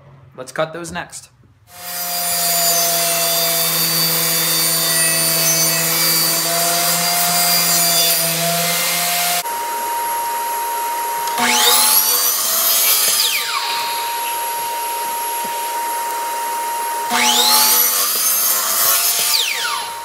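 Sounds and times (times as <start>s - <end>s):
table saw cutting panel: 1.7s - 20.0s
miter saw motor starting up: 8.4s - 20.0s
steady whine: 13.3s - 17.1s.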